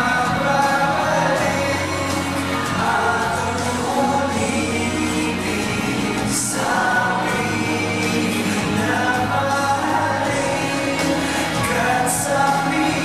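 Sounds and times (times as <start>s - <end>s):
live band playing: 0.0s - 13.0s
men singing together: 0.0s - 13.0s.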